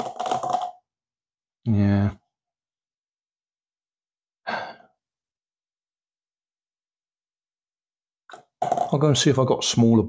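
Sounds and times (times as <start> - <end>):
man sighing: 4.4 - 5.0.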